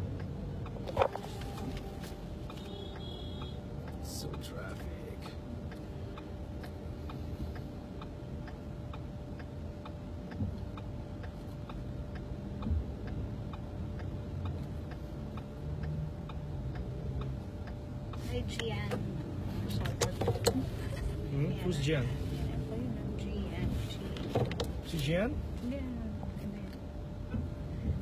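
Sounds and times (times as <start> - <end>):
car rumble from inside cabin: 0.0 - 28.0
turn signal ticking: 0.0 - 28.0.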